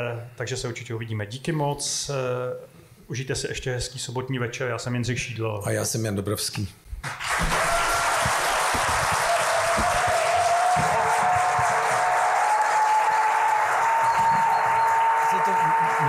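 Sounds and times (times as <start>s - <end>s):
large audience applauding: 7.0s - 16.0s.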